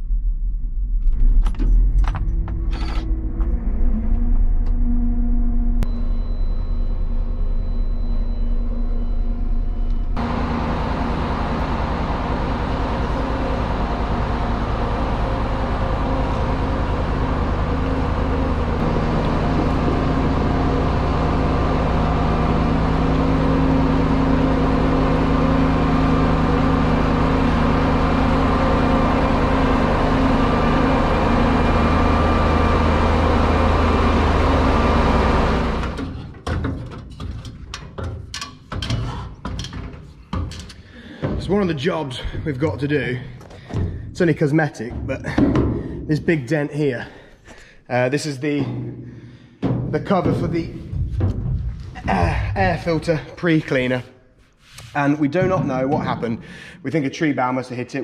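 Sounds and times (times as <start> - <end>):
deep steady hum: 0.0 - 36.3, 39.1 - 57.1
combine harvester diesel engine: 2.1 - 37.9.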